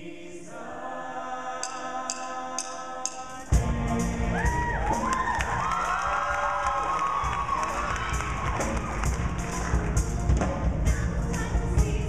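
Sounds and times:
live band drums and bass: 3.5 - 12.0
audience cheering and whooping: 4.3 - 9.9.

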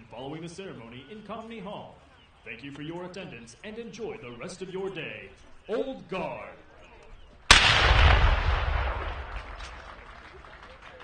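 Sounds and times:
cannon shot booming echo: 7.5 - 10.1.

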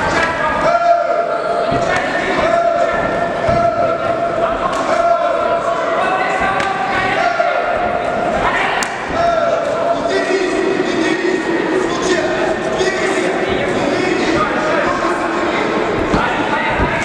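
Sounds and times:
echoing shouting voices: 0.0 - 17.0.

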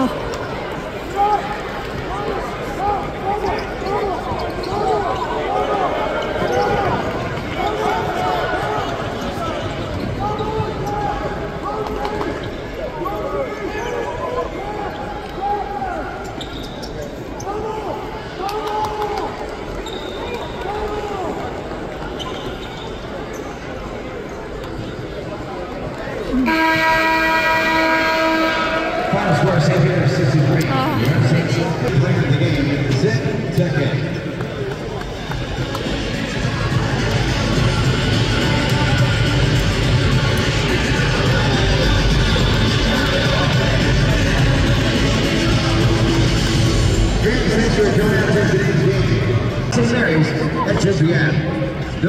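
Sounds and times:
crowd chatter: 0.0 - 52.0
game clock horn blast: 26.4 - 28.9.

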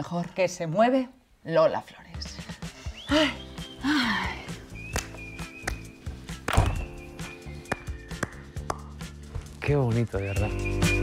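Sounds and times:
music with sustained tones: 3.0 - 11.0.

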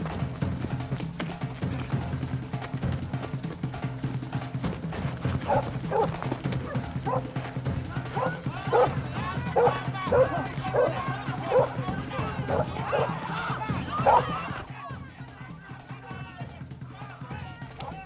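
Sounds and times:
dog barking: 5.4 - 7.4, 8.1 - 11.8, 12.5 - 13.2, 14.0 - 14.4.

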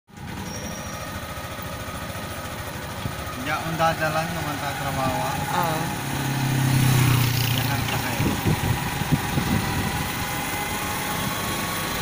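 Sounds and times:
small motorcycle engine running: 0.1 - 12.0.

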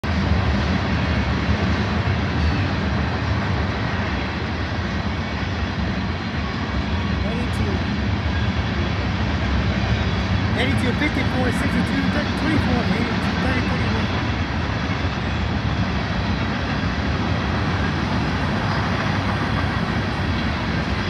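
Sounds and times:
distant freight train rumbling: 0.0 - 21.0.

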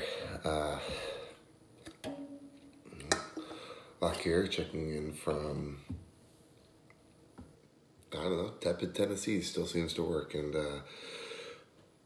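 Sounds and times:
can knocking on countertop: 1.9 - 3.6.

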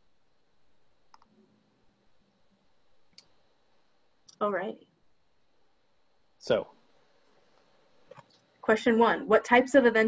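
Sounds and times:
faint clicks: 1.1 - 1.4, 3.1 - 3.4.

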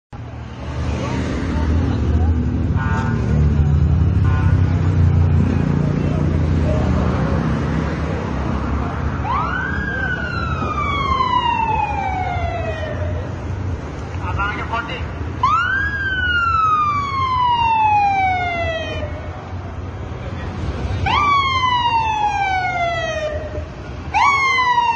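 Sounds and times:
street and engine rumble: 0.1 - 24.9
emergency vehicle siren: 9.1 - 13.6, 15.3 - 19.6, 21.0 - 24.9.

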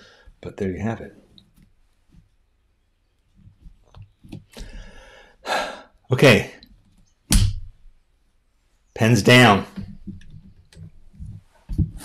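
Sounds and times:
man sighing: 4.6 - 5.9.

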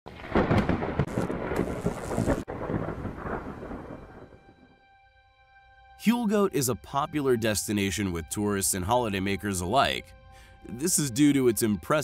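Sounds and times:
loud rumbling crackling noise: 0.1 - 4.5.

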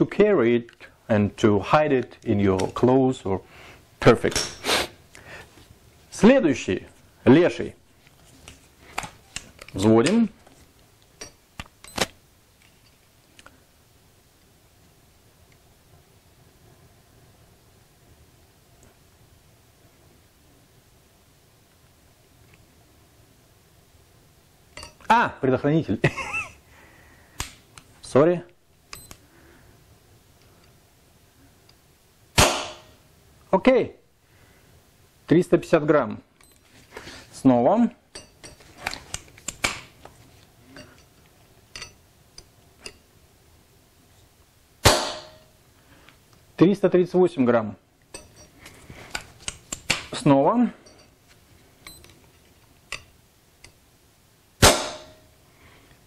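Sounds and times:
air pistol trigger snap: 27.4 - 27.6
air pistol firing crack: 32.4 - 33.0, 44.8 - 45.4, 54.6 - 55.2.

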